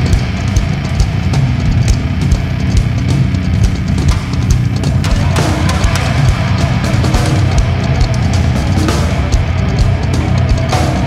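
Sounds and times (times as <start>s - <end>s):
drum kit hits: 0.0s - 11.0s
heavy distorted guitars and bass: 0.0s - 11.0s.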